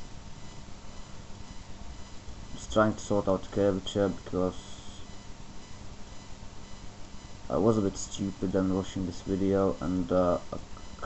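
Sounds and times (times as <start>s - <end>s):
faint hum: 0.0s - 11.0s
low hiss: 0.0s - 11.0s.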